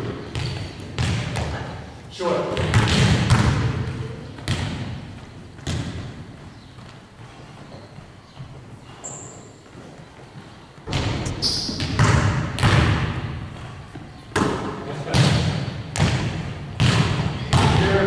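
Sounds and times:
basketballs bouncing on hardwood: 0:00.0 - 0:01.8, 0:02.6 - 0:08.6, 0:10.8 - 0:18.0.

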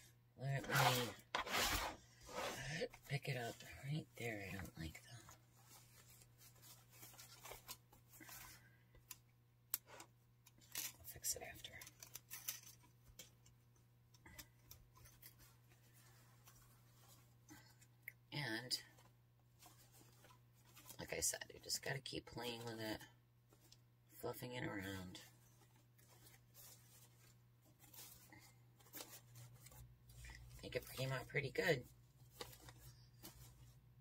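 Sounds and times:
ribbon rustling and crinkling: 0:00.6 - 0:09.1, 0:09.8 - 0:18.0, 0:18.9 - 0:22.7, 0:23.4 - 0:24.2, 0:24.8 - 0:34.0.

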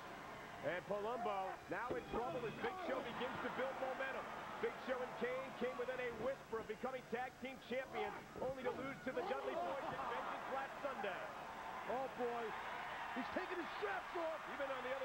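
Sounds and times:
arena crowd noise: 0:00.0 - 0:15.0
men talking and shouting: 0:00.7 - 0:15.0.

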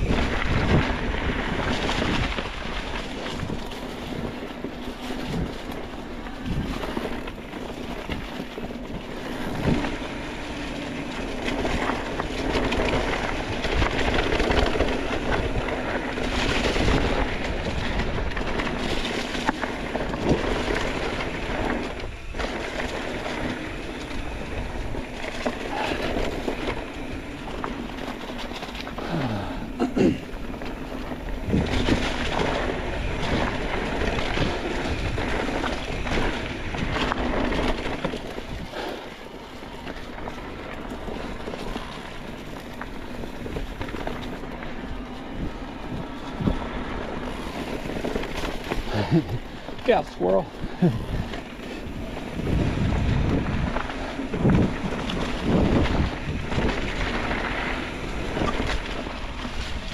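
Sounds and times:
bike rattling over bumps: 0:00.0 - 0:59.9
tyres crunching through dry leaves: 0:00.0 - 0:59.9.

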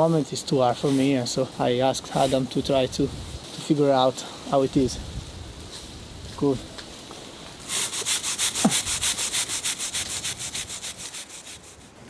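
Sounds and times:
brush scrubbing on rock: 0:00.5 - 0:06.6, 0:07.3 - 0:12.0.

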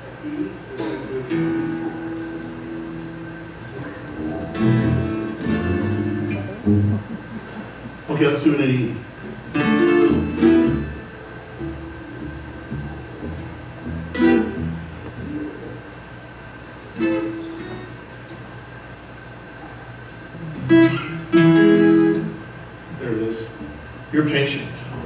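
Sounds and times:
acoustic guitar chords strummed: 0:00.9 - 0:07.6, 0:09.5 - 0:15.6, 0:16.9 - 0:18.0, 0:20.6 - 0:22.5.

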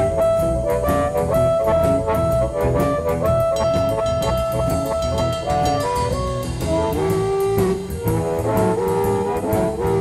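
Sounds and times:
electric blues band playing: 0:00.0 - 0:10.0
held lead melody line: 0:00.0 - 0:10.0
steady drum beat: 0:00.0 - 0:10.0.

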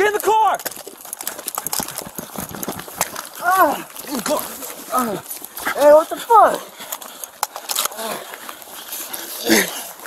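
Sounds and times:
body camera handling noise: 0:00.6 - 0:05.6.

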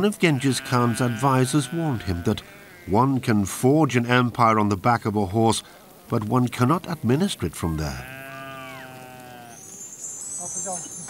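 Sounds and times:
sheep bleating: 0:00.0 - 0:03.2, 0:06.6 - 0:09.7
shimmering jingle of bells: 0:09.8 - 0:11.0.

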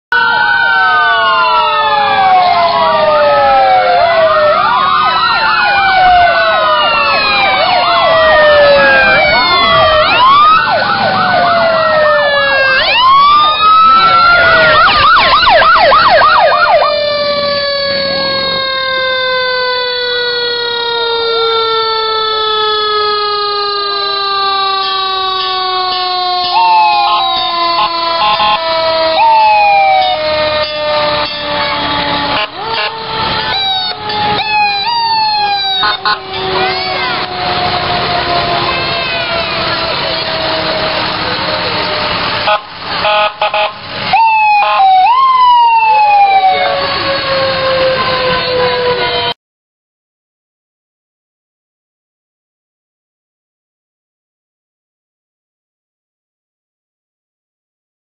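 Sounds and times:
fire engine sirens wailing: 0:00.1 - 0:49.4
siren winding down: 0:00.1 - 0:49.4
siren yelp: 0:00.1 - 0:49.4.

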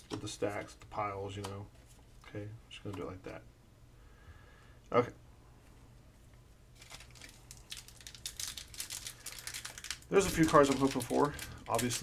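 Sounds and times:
foil wrapper crinkling: 0:06.8 - 0:12.0.

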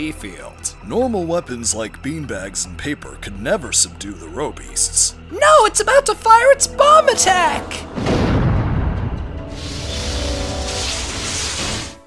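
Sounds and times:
cartoon explosion boom: 0:07.9 - 0:12.0.

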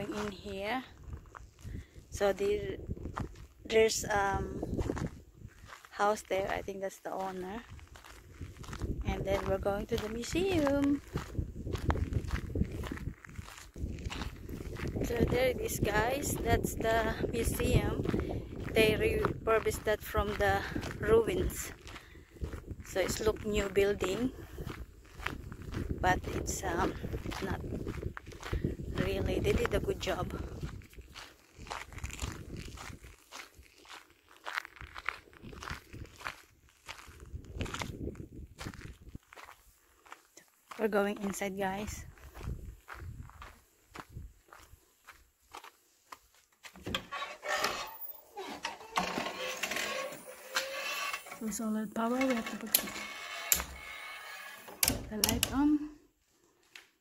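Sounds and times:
footsteps on gravel: 0:00.0 - 0:53.8, 0:54.6 - 0:55.8.

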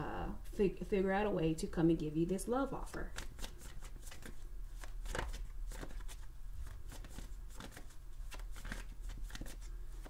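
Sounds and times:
cards being shuffled: 0:02.8 - 0:10.0.

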